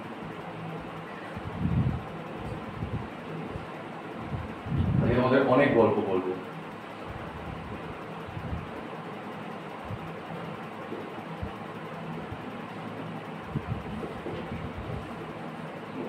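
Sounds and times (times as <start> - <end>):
steady background hum: 0.0 - 16.0.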